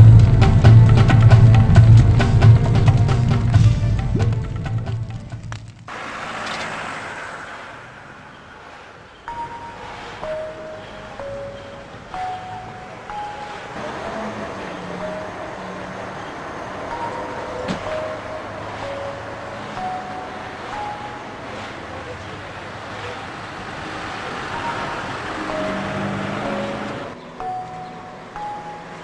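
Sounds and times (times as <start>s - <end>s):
steady wash of noise: 5.9s - 10.4s
bell-like melody: 9.1s - 29.0s.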